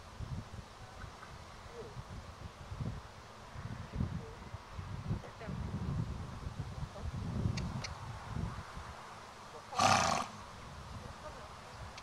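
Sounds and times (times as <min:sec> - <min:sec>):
horse snorting: 0:09.8 - 0:10.4.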